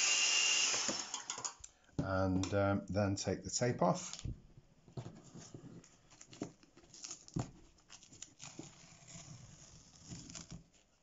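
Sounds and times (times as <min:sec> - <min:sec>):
tape peeling off paper: 0:06.8 - 0:10.9.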